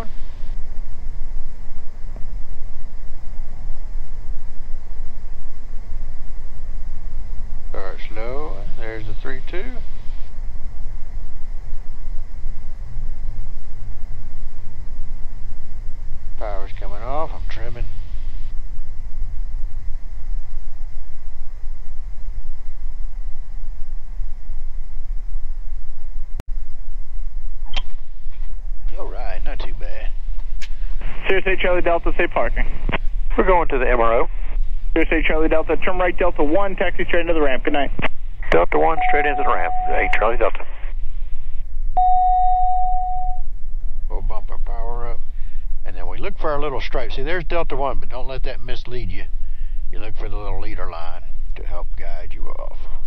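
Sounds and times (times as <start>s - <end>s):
airflow noise: 0.0s - 46.5s, 47.9s - 53.0s
aircraft cabin engine drone: 0.0s - 53.0s
steady electronic beep: 38.8s - 40.5s, 42.0s - 43.4s.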